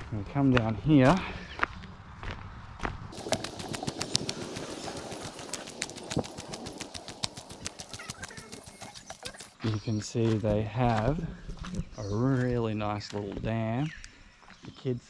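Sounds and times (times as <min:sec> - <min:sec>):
footsteps crunching on dry leaves: 0:03.1 - 0:12.3.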